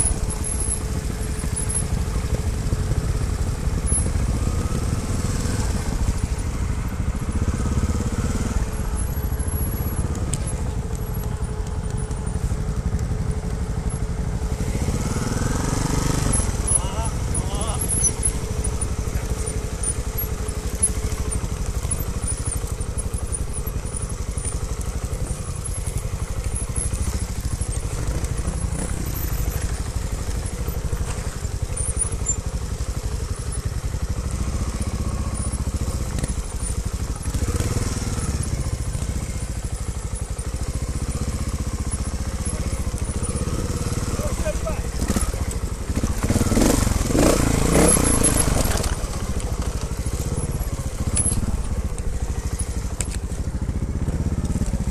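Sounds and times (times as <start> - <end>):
motorcycle engine running: 0.0 - 54.9.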